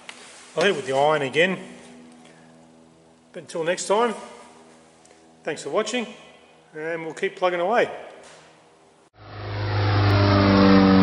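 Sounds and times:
low steady engine note: 0.0 - 7.3.

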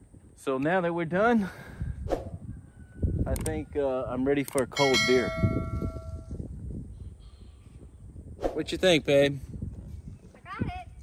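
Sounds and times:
bell chime: 4.8 - 6.3.

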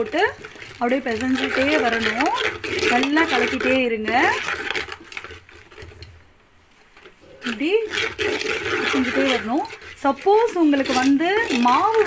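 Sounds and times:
spoon scraping a metal pot: 0.0 - 6.2, 7.2 - 12.0
person speaking: 7.3 - 7.9, 8.8 - 12.0.

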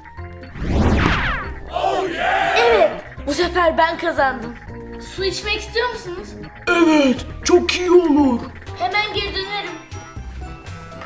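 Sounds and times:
quick falling whoosh: 0.5 - 1.6
boy yelling angrily: 2.2 - 3.1.

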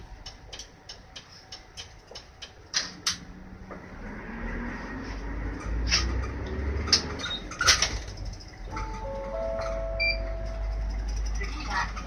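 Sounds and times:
turn-signal relay ticking: 0.0 - 2.8
bus engine idling: 4.7 - 12.0.

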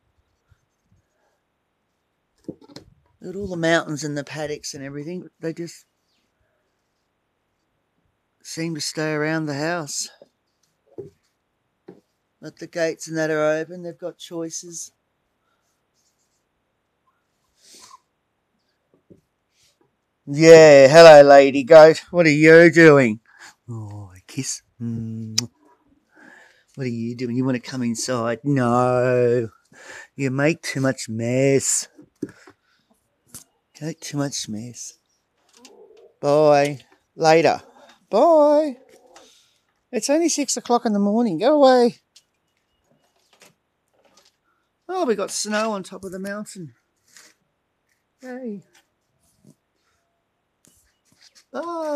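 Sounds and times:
faint soft noises: 0.0 - 51.9.

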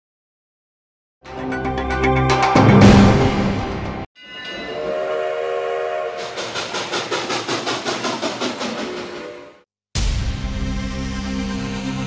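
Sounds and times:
steam locomotive chord whistle: 4.6 - 7.1
steam locomotive chuffing: 5.7 - 9.7.

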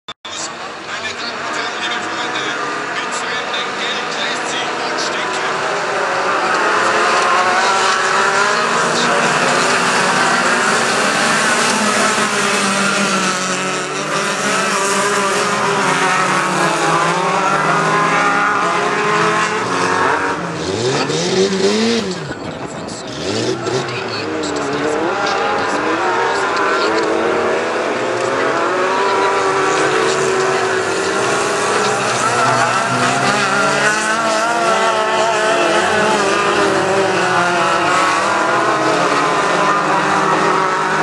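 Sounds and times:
racing car engines revving: 0.3 - 41.0.

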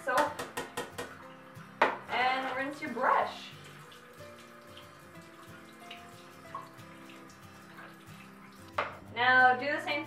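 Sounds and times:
faint background music: 0.0 - 10.0
tap running into sink: 3.7 - 9.0.

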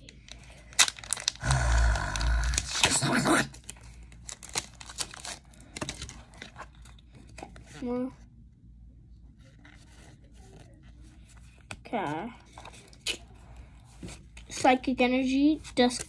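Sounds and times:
foil pack crinkling: 0.3 - 7.0.

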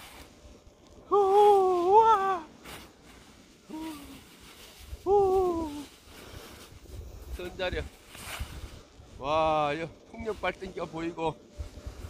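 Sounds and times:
man's soft hoo of delight: 1.0 - 2.6, 3.7 - 4.2, 4.9 - 5.9.

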